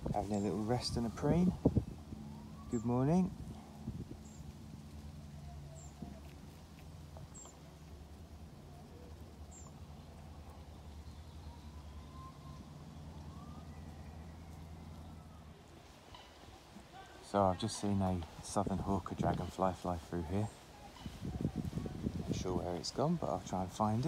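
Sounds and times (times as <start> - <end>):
faint high chirps: 8.7 - 17.2.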